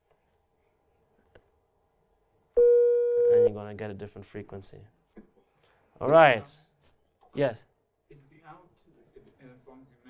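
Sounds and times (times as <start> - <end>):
steady sine-wave test tone: 2.6 - 3.5.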